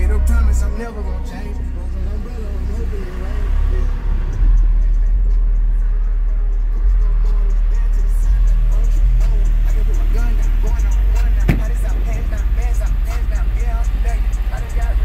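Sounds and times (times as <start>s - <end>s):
deep bass notes: 0.0s - 15.0s
rap vocals: 0.0s - 15.0s.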